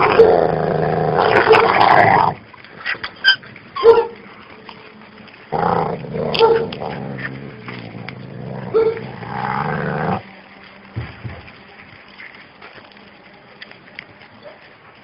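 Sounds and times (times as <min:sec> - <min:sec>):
dogs growling: 0:00.0 - 0:10.4.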